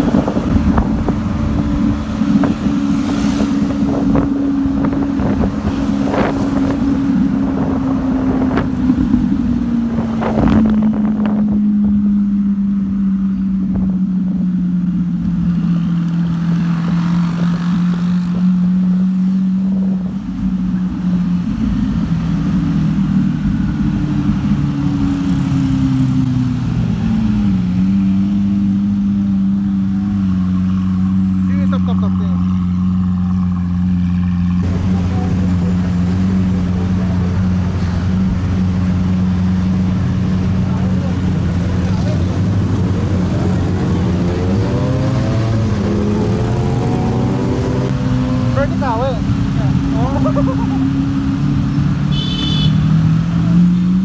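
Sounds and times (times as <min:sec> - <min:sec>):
car engine droning: 0:00.0 - 0:54.0.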